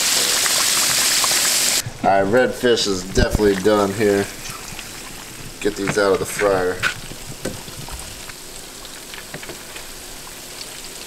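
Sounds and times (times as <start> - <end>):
hot oil sizzling in a frying pan: 0.0 - 1.8, 6.6 - 11.0
light crackles: 2.8 - 11.0.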